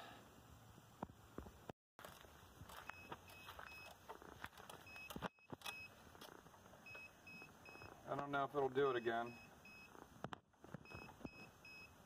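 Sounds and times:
short high-pitched beeps: 0:02.8 - 0:03.9, 0:04.8 - 0:06.0, 0:06.8 - 0:08.0, 0:08.8 - 0:10.0, 0:10.8 - 0:12.0.

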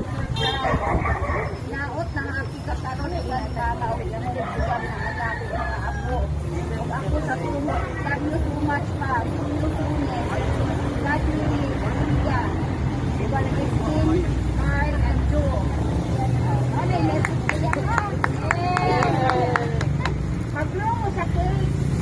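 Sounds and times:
low traffic rumble: 0:00.0 - 0:22.0
people talking over one another: 0:00.0 - 0:22.0.

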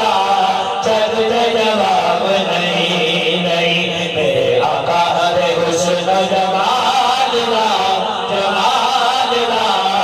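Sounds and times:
man singing into a microphone: 0:00.0 - 0:10.0.

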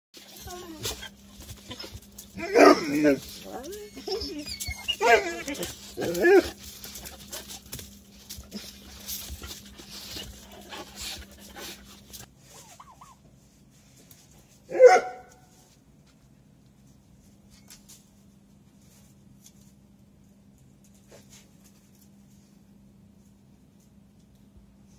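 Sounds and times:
dogs whining and yelping: 0:00.2 - 0:07.1, 0:12.5 - 0:13.3
dogs scuffling and clicking: 0:00.2 - 0:12.3.

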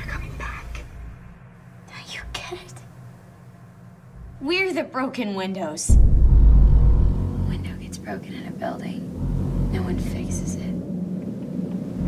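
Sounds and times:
steady low hum: 0:00.0 - 0:12.0
person whispering: 0:01.9 - 0:02.8.

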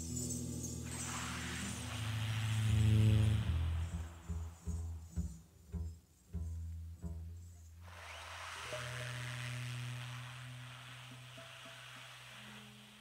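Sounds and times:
double bass note: 0:00.0 - 0:07.6
soft hissing wash: 0:00.5 - 0:05.2, 0:07.8 - 0:13.0.

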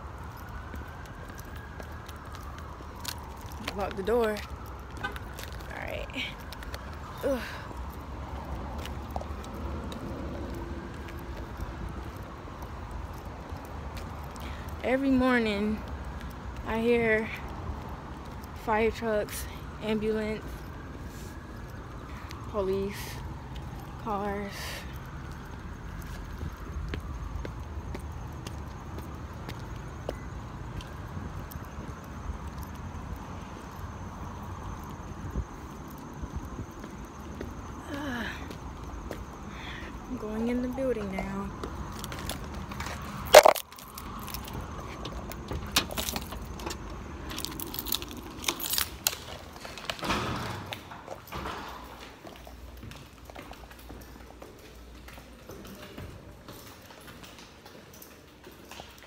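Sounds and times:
road traffic rumble: 0:00.0 - 0:59.0
footsteps walking: 0:07.8 - 0:14.3, 0:25.0 - 0:32.9, 0:40.9 - 0:50.0, 0:51.1 - 0:59.0.

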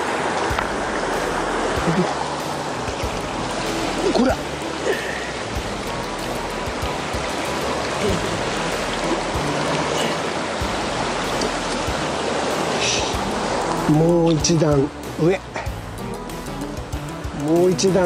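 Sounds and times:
river rushing over rocks: 0:00.0 - 0:15.8.

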